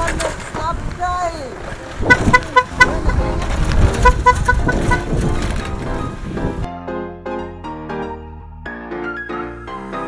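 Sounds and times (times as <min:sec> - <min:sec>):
scooter horn beeping: 0:02.0 - 0:05.2.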